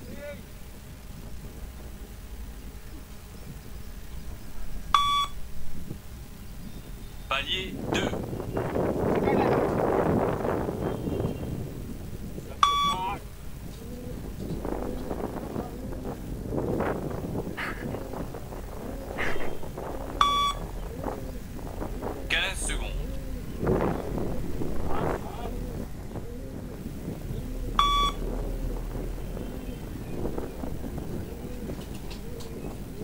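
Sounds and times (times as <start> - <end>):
wind on microphone: 0.0 - 33.0
short electronic beep: 5.0 - 5.4, 12.6 - 13.0, 20.2 - 20.6, 27.8 - 28.2.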